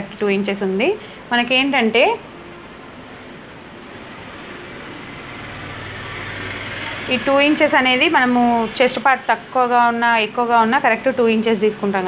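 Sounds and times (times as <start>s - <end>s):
low hum: 2.2s - 8.8s.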